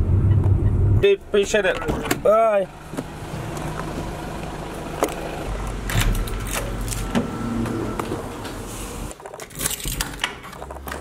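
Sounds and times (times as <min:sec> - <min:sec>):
low engine rumble: 0:00.0 - 0:09.1
street traffic: 0:00.0 - 0:11.0.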